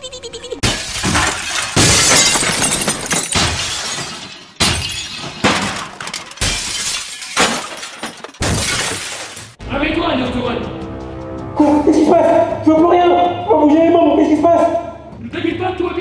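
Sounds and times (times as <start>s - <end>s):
loud shattering crashes: 0.6s - 9.6s.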